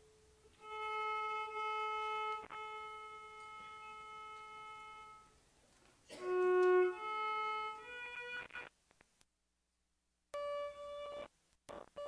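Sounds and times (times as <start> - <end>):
violin holding long note: 0.5 - 5.4, 6.1 - 8.5.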